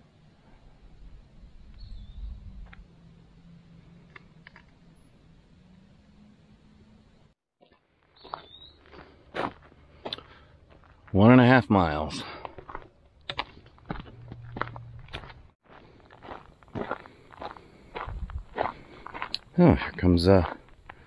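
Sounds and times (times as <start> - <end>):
low rumble: 0.6 - 7.4, 13.6 - 15.5, 18.0 - 18.6
footsteps on rocky ground: 7.6 - 21.0.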